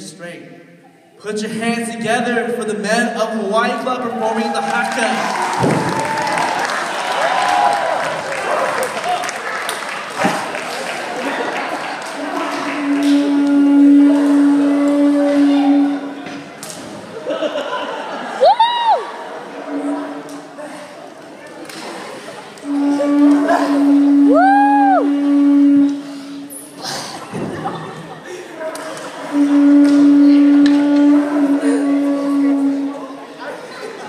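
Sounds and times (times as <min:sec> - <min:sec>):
crowd voices: 0:03.8 - 0:34.0
audience applauding: 0:04.4 - 0:13.6
conch shell horn low note: 0:12.6 - 0:16.2, 0:22.6 - 0:26.5, 0:29.3 - 0:33.2.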